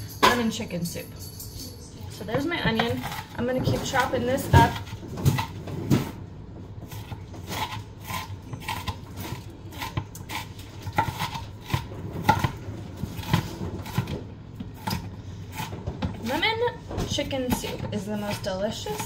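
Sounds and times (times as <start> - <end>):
knife chopping on cutting board: 6.9 - 12.6.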